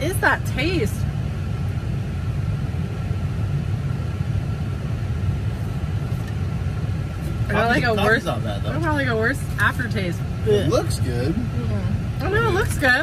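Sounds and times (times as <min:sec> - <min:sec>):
car interior rumble: 0:00.0 - 0:13.0.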